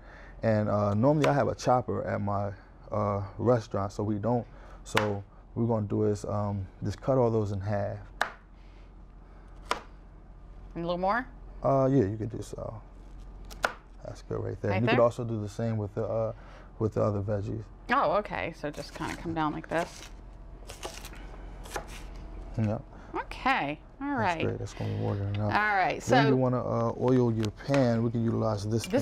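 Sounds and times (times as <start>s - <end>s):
knife chopping on cutting board: 1.2s - 1.4s, 4.9s - 5.1s, 8.2s - 8.4s, 9.6s - 9.9s, 13.5s - 13.9s, 21.6s - 22.0s.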